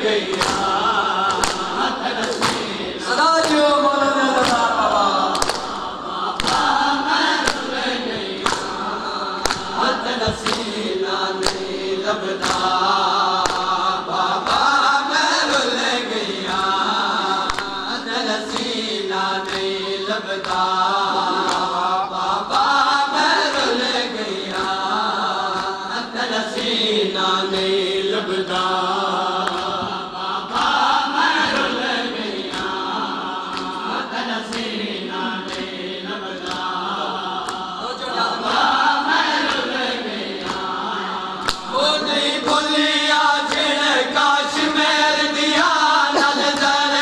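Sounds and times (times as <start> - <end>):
mourners chanting along: 0.0 - 47.0
person chanting a lament: 0.0 - 47.0
chest-beating slaps: 0.3 - 2.8, 5.3 - 6.8, 7.4 - 11.8, 12.4 - 13.8, 17.5 - 18.8, 41.4 - 41.8.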